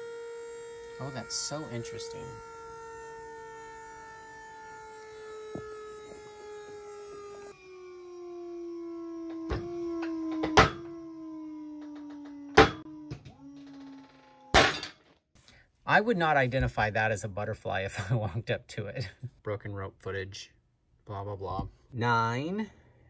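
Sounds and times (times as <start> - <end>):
motor humming: 0.0 - 14.6.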